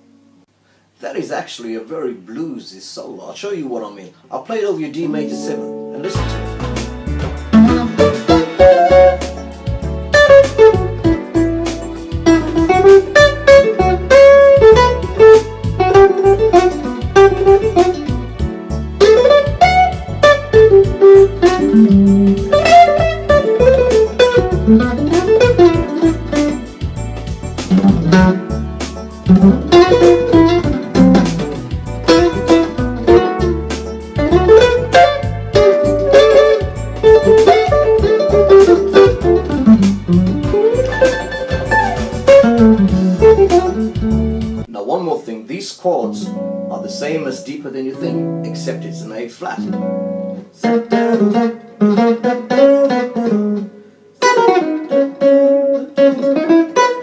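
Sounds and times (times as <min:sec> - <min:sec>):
electric guitar jazz solo: 0:05.1 - 0:44.7, 0:46.0 - 0:57.0
backing track with beat and bass: 0:06.0 - 0:44.7.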